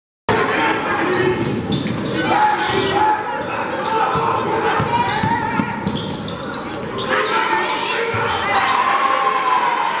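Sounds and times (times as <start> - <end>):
sneaker squeaks: 0.3 - 9.4
voices in large gym: 0.3 - 10.0.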